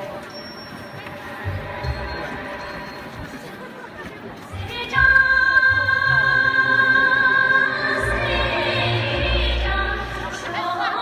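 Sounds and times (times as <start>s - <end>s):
audience chatter: 0.0s - 11.0s
performance music: 0.0s - 11.0s.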